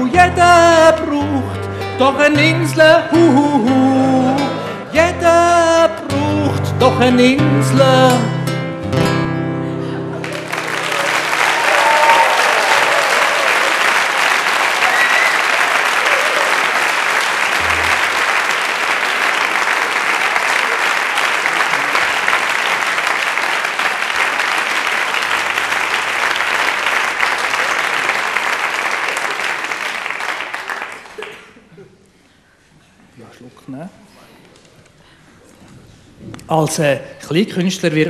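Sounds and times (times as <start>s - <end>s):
audience applause: 10.1s - 31.7s
person cheering: 10.3s - 14.0s, 14.8s - 16.8s.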